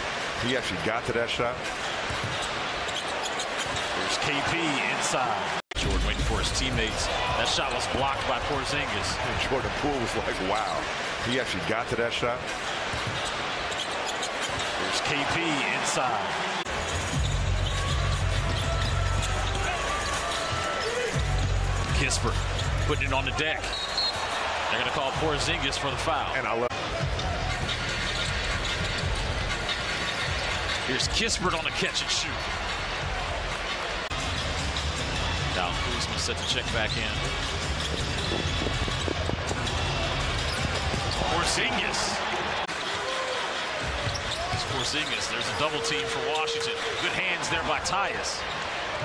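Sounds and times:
arena crowd rumble and chatter: 0.0s - 49.0s.

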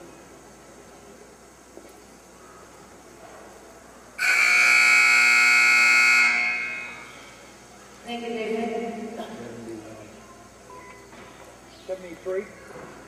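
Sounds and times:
timer buzzer: 4.2s - 7.2s.

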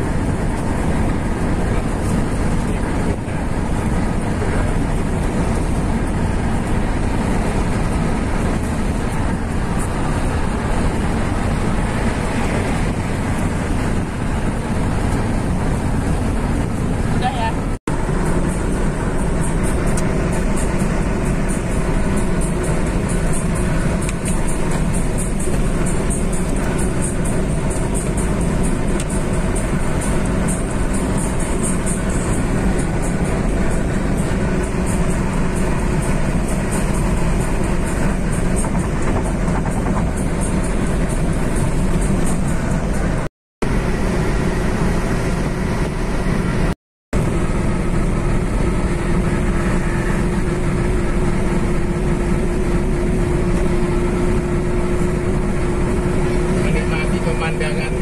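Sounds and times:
car road and engine noise: 0.0s - 58.0s
music: 18.0s - 43.3s.

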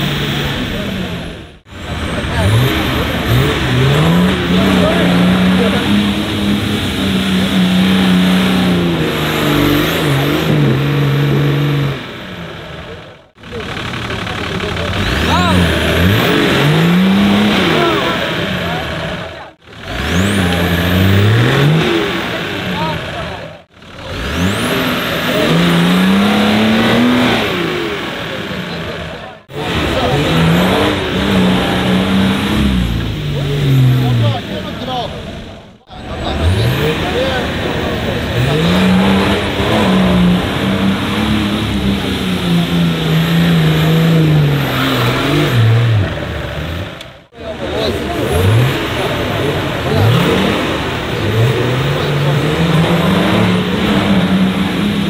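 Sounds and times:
engine revving under load: 0.0s - 55.0s
onlookers' voices: 0.0s - 55.0s.

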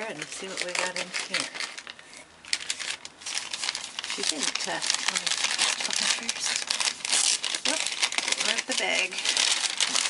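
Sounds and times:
paper bag crinkling: 0.0s - 10.0s.

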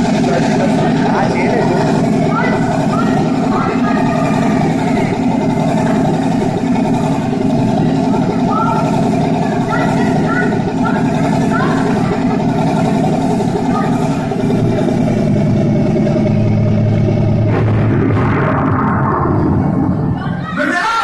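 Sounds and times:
voices: 0.0s - 17.6s, 18.6s - 21.0s
helicopter engine drone: 0.0s - 21.0s.

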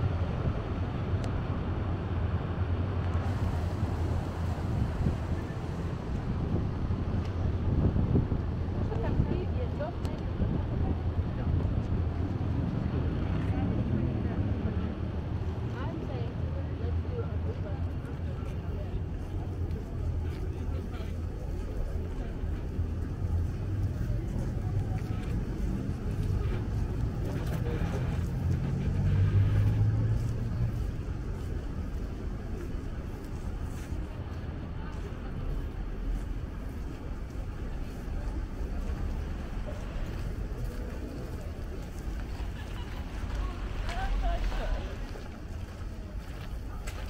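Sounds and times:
traffic rumble: 0.0s - 47.0s
vehicle passing: 3.2s - 8.4s, 21.5s - 47.0s
murmur of voices: 3.2s - 47.0s.

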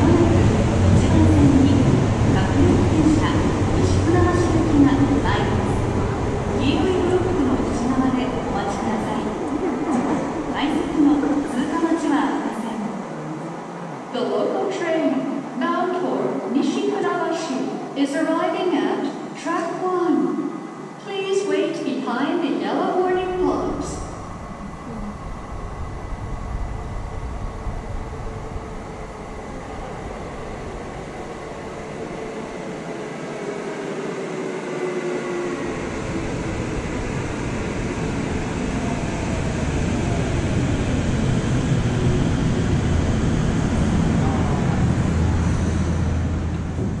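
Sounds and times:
train wheels rumbling on rails: 23.4s - 47.0s.

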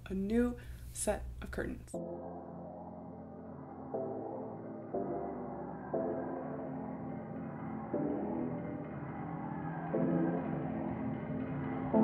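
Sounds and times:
soft ambient instrumental music: 1.9s - 12.0s.

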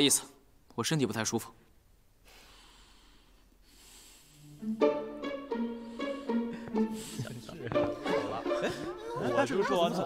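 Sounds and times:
person breathing faintly: 2.2s - 4.8s, 5.6s - 7.5s.

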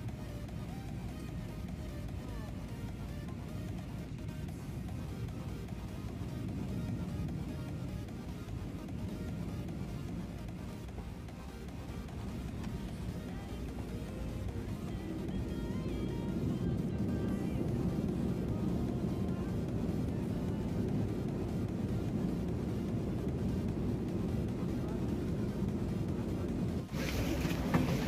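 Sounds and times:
airliner cabin rumble: 0.0s - 28.0s
background music: 0.0s - 28.0s.

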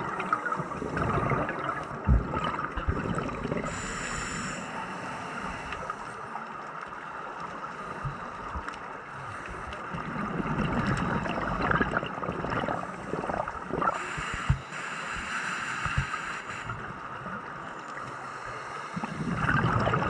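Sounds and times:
gurgling exhaled bubbles: 0.0s - 4.1s, 9.9s - 14.4s, 18.9s - 20.0s
steady underwater hiss: 0.0s - 20.0s.

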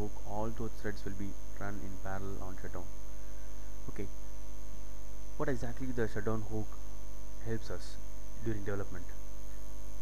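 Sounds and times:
electrical mains hum: 0.0s - 10.0s
high-pitched whine: 0.0s - 10.0s.

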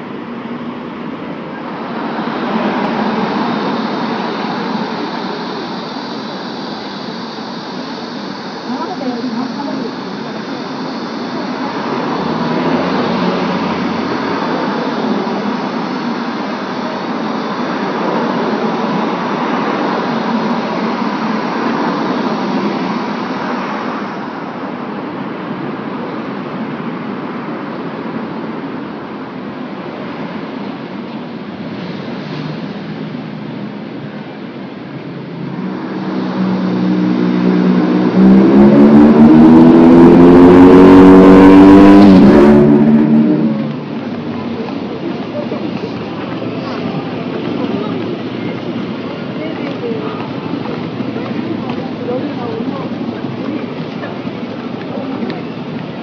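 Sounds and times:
street traffic noise: 0.0s - 56.0s
vehicle engine revving close by: 8.4s - 24.3s, 35.0s - 49.1s.

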